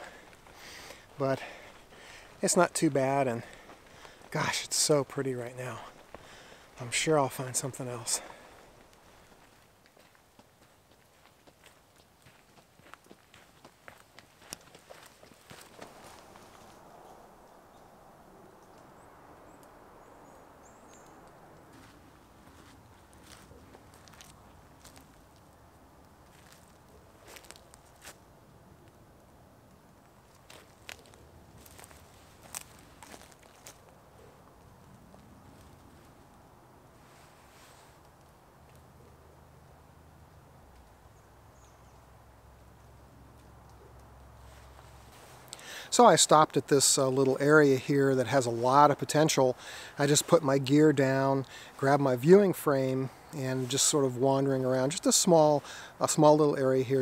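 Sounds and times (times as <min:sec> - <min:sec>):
footsteps on forest trail: 0:00.0 - 0:17.2, 0:20.6 - 0:28.2, 0:30.3 - 0:36.4, 0:44.2 - 0:54.1.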